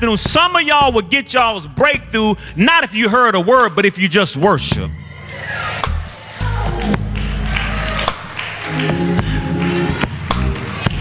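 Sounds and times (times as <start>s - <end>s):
person preaching: 0.0s - 5.0s
band playing: 5.7s - 11.0s.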